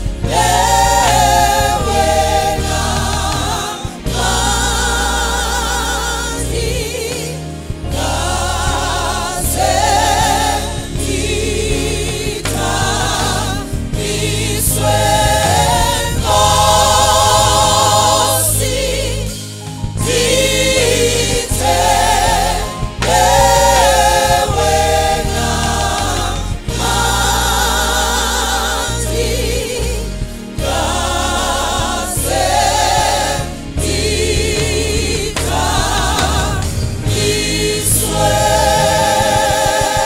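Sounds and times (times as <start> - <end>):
gospel choir singing: 0.0 - 40.0
instrumental accompaniment with bass: 0.0 - 40.0.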